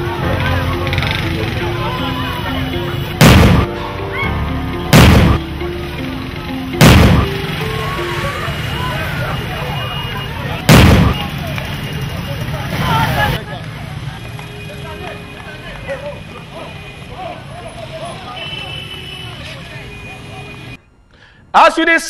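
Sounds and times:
crowd voices: 0.0s - 20.8s
loud gunshot bangs: 3.2s - 3.7s, 4.9s - 5.4s, 6.8s - 7.3s, 10.7s - 11.4s.

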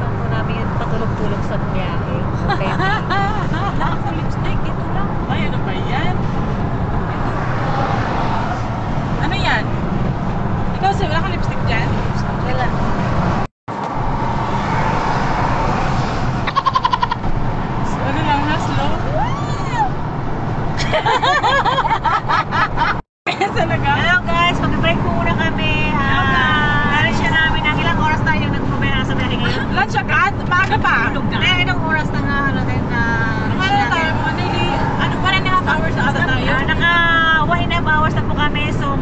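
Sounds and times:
car road and engine rumble: 0.0s - 39.0s
women talking and laughing: 1.0s - 6.2s, 20.7s - 38.0s.

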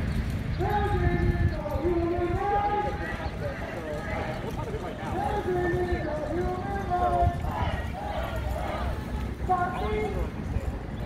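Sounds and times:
indistinct voices outdoors: 0.0s - 11.0s
low microphone handling rumble: 0.0s - 11.0s.

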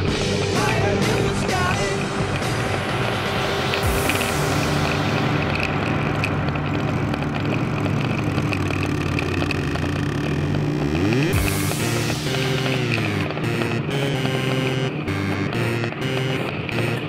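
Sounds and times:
background music: 0.0s - 17.0s
motorcycle engines passing: 0.0s - 17.0s.

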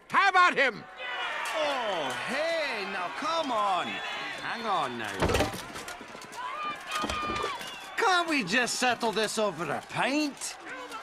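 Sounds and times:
dialogue: 0.0s - 11.0s.

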